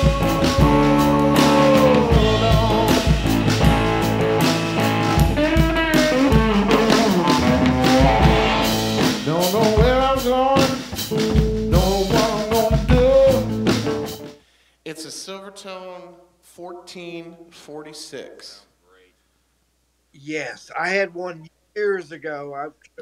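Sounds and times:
man singing: 0.0s - 3.3s, 9.2s - 13.9s, 14.9s - 17.5s
drum kit: 0.0s - 14.4s
electric guitar bending notes: 0.0s - 14.4s.

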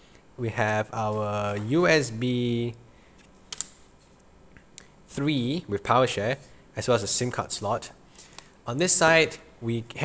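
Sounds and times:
sharp plastic clicks: 3.2s - 3.8s.

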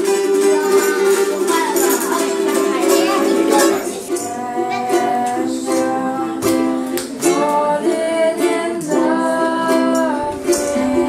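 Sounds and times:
girl singing: 0.0s - 11.0s
ukulele strumming chords: 0.0s - 11.0s.

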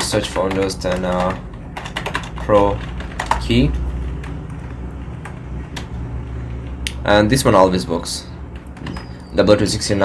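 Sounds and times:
computer keyboard keystrokes: 0.0s - 5.9s
steady low hum: 0.0s - 10.0s.

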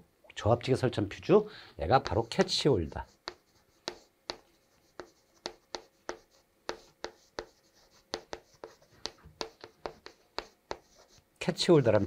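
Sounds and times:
chalk tapping and scratching: 1.9s - 12.0s.

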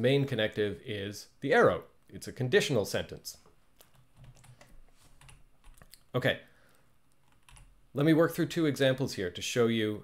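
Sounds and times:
faint keyboard clicks: 3.8s - 6.1s.

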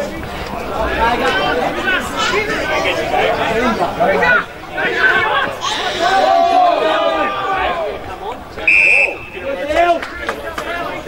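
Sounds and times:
voices shouting and talking: 0.0s - 11.0s.

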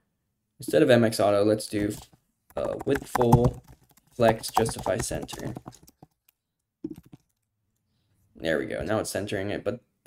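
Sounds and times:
computer keyboard keystrokes: 1.9s - 7.5s.

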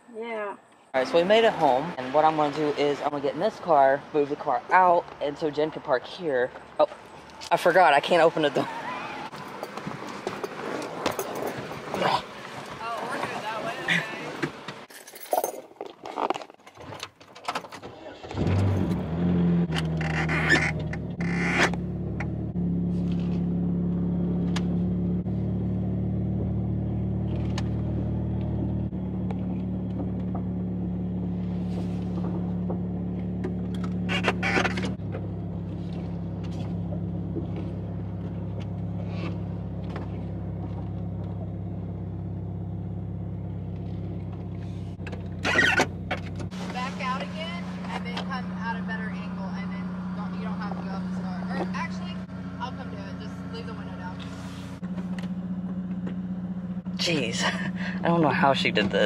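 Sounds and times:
car engine idling: 18.3s - 59.0s.

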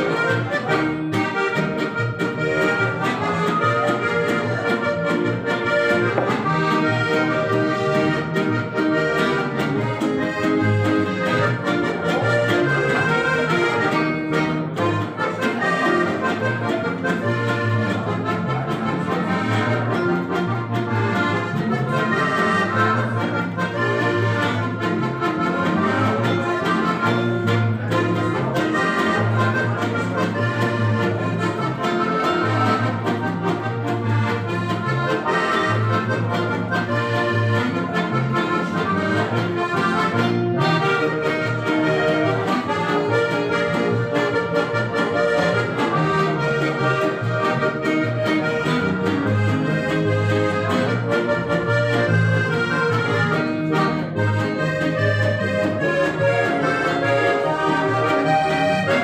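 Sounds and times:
accordions playing folk dance music: 0.0s - 59.0s
guitar accompaniment: 0.0s - 59.0s.

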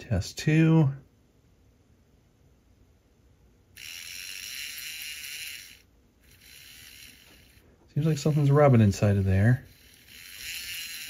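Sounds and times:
model locomotive motor whirring: 3.8s - 11.0s
motor shaft scraping metal body: 3.8s - 11.0s.

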